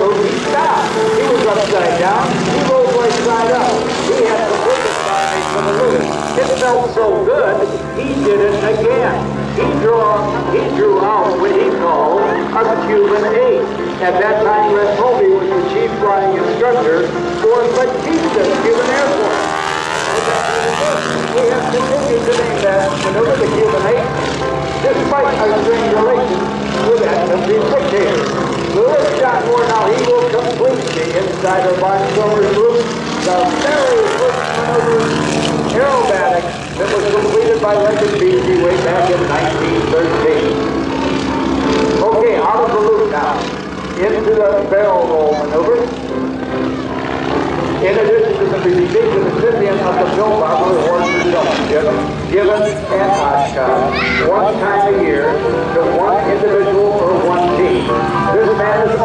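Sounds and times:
announcer speaking over loudspeaker: 0:00.0 - 0:46.2, 0:46.8 - 0:59.0
biplane engine droning: 0:00.0 - 0:59.0.

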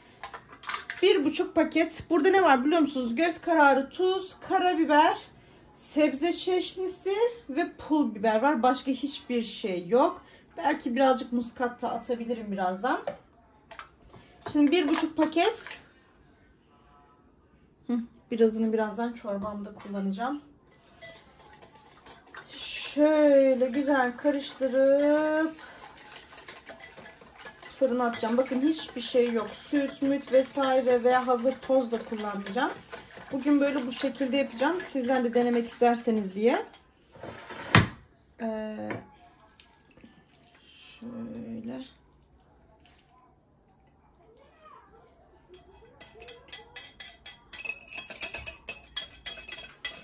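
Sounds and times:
spoon stirring cream in bowl: 0:18.5 - 0:37.4, 0:45.5 - 0:50.0.

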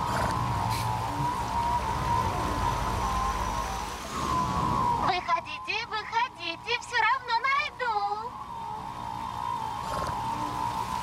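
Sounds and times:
sustained drone: 0:00.0 - 0:11.0.

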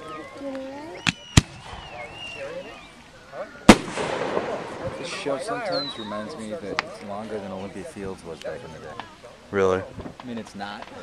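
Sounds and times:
people talking: 0:00.0 - 0:11.0
fireworks bangs: 0:01.0 - 0:02.8, 0:03.7 - 0:07.0.

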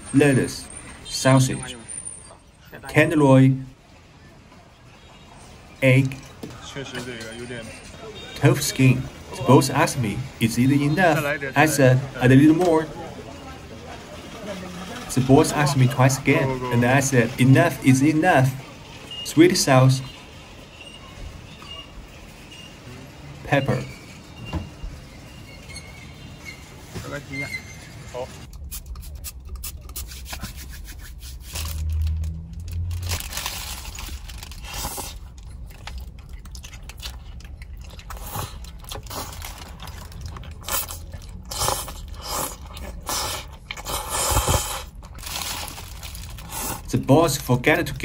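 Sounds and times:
wet chewing and biting: 0:28.5 - 0:46.9
plastic bag crinkling: 0:31.3 - 0:42.3, 0:44.7 - 0:46.9.

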